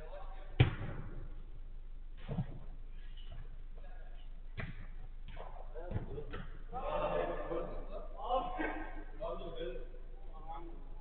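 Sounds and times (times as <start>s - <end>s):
football kick thud: 0.6s - 1.3s.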